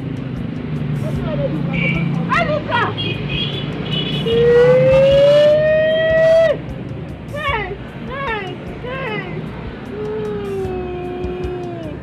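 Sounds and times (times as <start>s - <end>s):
woman wailing: 10.0s - 12.0s.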